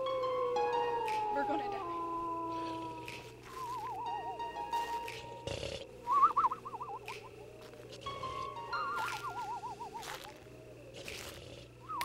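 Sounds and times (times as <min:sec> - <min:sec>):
eerie held tones: 0:00.0 - 0:12.0.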